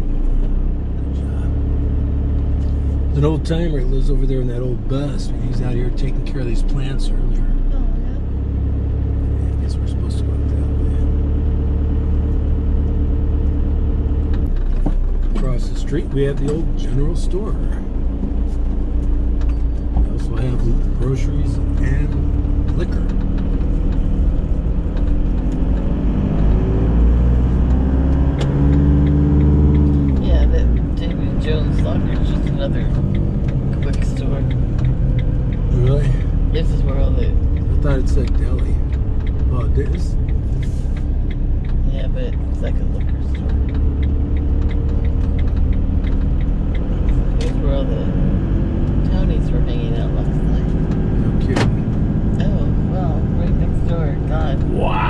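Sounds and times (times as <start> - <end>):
van engine from inside cab: 0.0 - 55.0.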